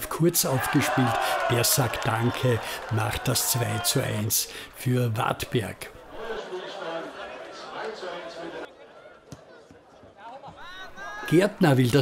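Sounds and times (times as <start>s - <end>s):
people chattering outdoors: 4.8s - 12.0s.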